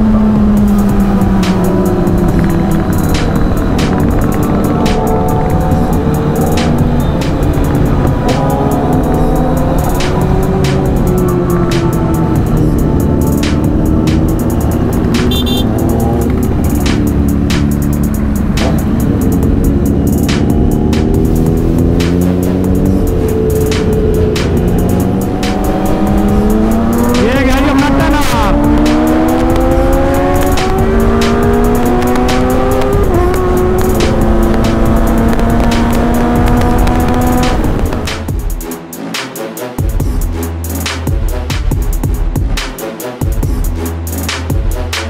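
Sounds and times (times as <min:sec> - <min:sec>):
motorcycle engine accelerating: 0:00.0 - 0:38.4
music with a steady beat: 0:00.0 - 0:45.0.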